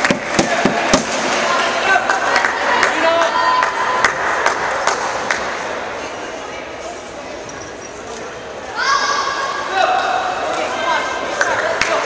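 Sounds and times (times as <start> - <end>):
crowd murmur in a large hall: 0.0 - 12.0.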